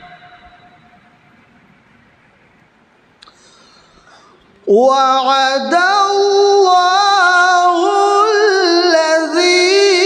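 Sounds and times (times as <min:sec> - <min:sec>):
faint room hiss: 0:00.0 - 0:07.4
man reciting with echo: 0:04.6 - 0:10.0.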